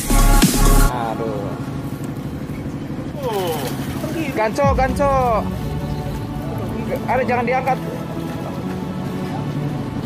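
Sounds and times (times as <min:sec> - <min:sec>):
boat engine rumbling: 0:00.0 - 0:10.0.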